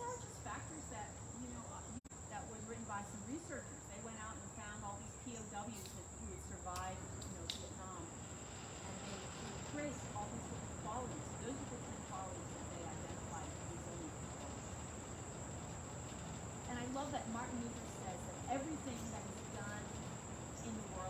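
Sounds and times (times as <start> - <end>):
crickets chirring: 0.0 - 21.0.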